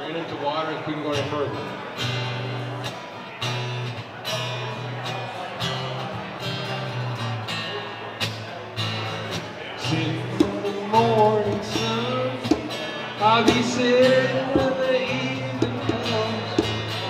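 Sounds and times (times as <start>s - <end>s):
acoustic guitar strumming: 0.7s - 17.0s.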